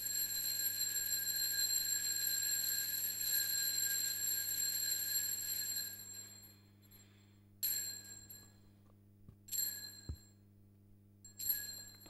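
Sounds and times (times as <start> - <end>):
small altar bells ringing: 0.0 - 8.7, 9.5 - 10.4, 11.2 - 12.0.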